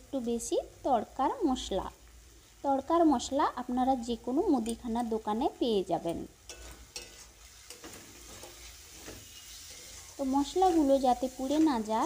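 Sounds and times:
masala frying with faint sizzle: 0.0 - 12.0
spatula scraping: 6.5 - 11.9.

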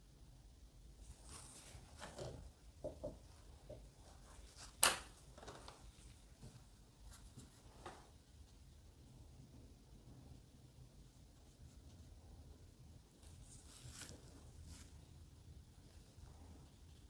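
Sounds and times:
brush brushing on paper: 1.0 - 2.1, 13.1 - 17.0.

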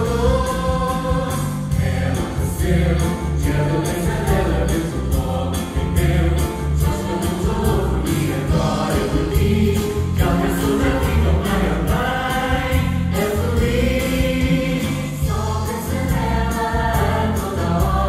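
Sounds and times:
cast singing in chorus: 0.0 - 18.0
music with heavy bass: 0.0 - 18.0.

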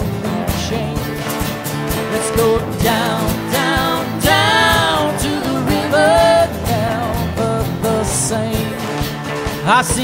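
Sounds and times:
drums: 0.0 - 10.0
keyboard: 0.0 - 10.0
strummed acoustic guitars: 0.0 - 10.0.

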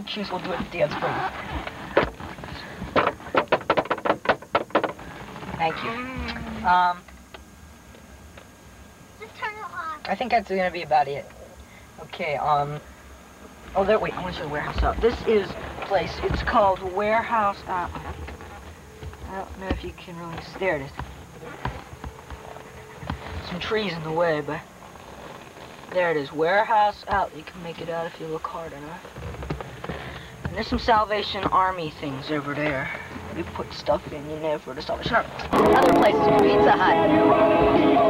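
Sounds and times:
faint steady hum: 0.0 - 38.0
car interior rumble: 11.8 - 38.0
shoes tapping on windshield: 14.6 - 23.6.

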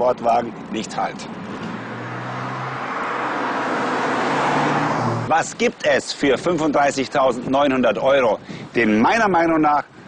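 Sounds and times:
tyre and road noise: 0.0 - 10.0.

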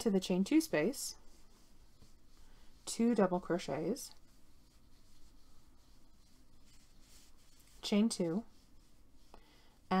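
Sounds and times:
yarn rubbing over crochet hook: 0.0 - 10.0.

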